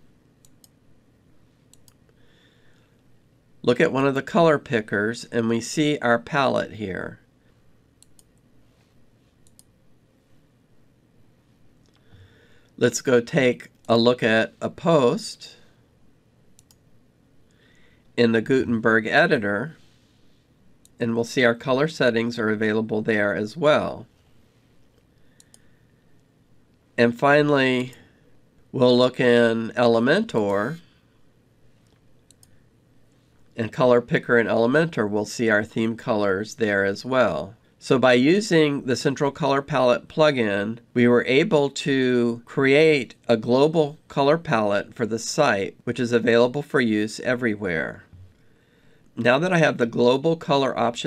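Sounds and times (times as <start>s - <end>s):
computer mouse clicking: 1.7s - 2.2s, 8.0s - 8.5s, 9.4s - 9.8s, 16.6s - 16.8s, 24.9s - 25.6s, 31.8s - 32.6s.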